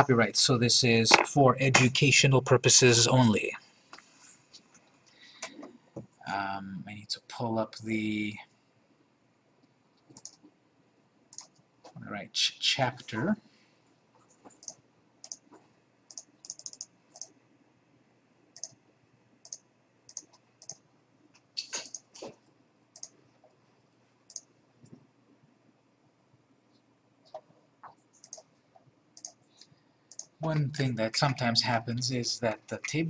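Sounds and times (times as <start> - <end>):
computer mouse clicking: 10.0 - 10.5, 11.3 - 11.7, 14.2 - 17.4, 18.6 - 18.8, 19.4 - 20.8, 21.4 - 22.3, 23.0 - 23.2, 24.3 - 25.0, 27.3 - 30.4.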